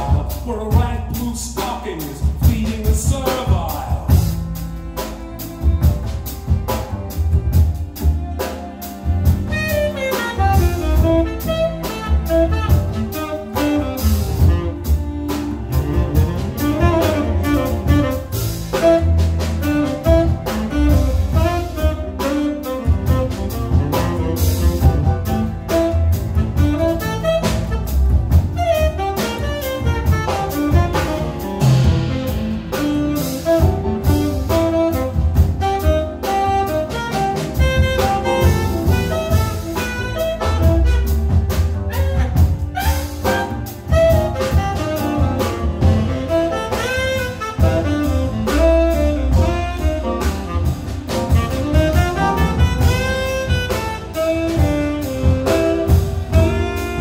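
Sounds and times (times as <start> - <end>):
double bass: 0.0 - 57.0
drum kit: 0.0 - 57.0
saxophone melody: 3.5 - 57.0
bowed cellos: 4.4 - 9.9, 13.4 - 19.4.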